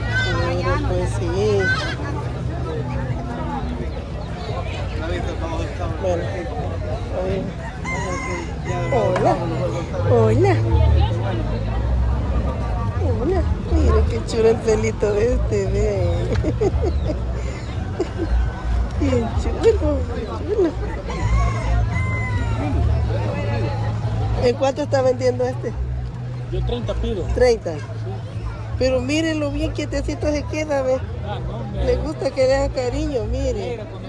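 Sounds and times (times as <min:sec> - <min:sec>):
people talking: 0:00.0 - 0:18.4
crowd babble: 0:00.0 - 0:34.0
rooster crowing: 0:07.6 - 0:09.2, 0:21.1 - 0:22.8.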